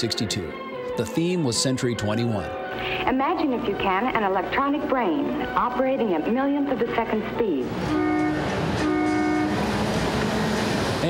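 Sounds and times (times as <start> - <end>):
monorail train running past: 5.2 - 11.0
monorail train horn: 7.3 - 11.0.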